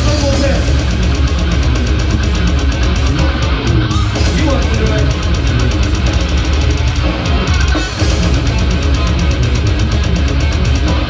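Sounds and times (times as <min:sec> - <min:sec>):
distorted electric guitars: 0:00.0 - 0:11.0
drums and cymbals: 0:00.0 - 0:11.0.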